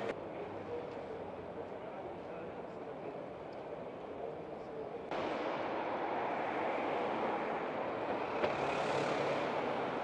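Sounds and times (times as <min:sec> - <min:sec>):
rush of traffic noise: 0:00.0 - 0:10.0
car driving past: 0:05.2 - 0:10.0.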